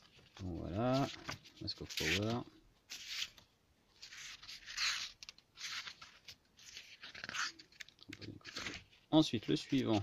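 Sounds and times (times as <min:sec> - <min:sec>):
book pages turning: 0:00.0 - 0:10.0.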